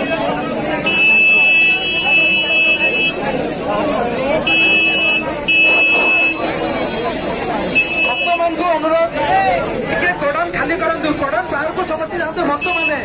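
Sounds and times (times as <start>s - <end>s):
crowd chatter: 0.0s - 13.0s
horn blasts: 0.8s - 3.2s, 4.4s - 8.6s.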